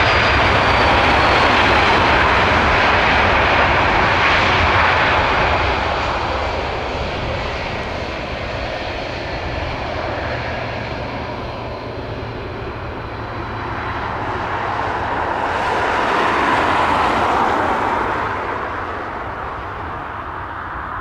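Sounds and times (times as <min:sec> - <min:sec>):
jet engines rushing: 0:00.0 - 0:21.0.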